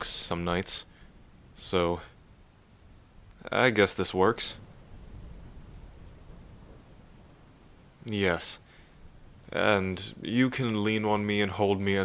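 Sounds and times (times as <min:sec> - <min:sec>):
faint steady rain: 0:00.0 - 0:12.0
low rumble of thunder: 0:00.0 - 0:12.0.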